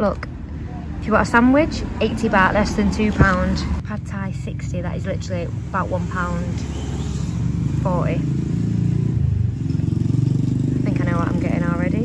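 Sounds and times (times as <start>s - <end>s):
woman speaking: 0.0s - 0.3s, 1.0s - 6.7s, 7.8s - 8.3s, 10.9s - 12.0s
small engine rumbling: 0.0s - 12.0s.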